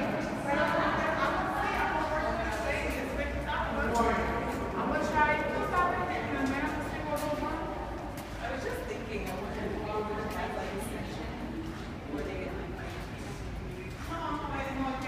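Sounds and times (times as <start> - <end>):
indistinct chatter: 0.0 - 15.0
light footstep clicks: 0.1 - 15.0.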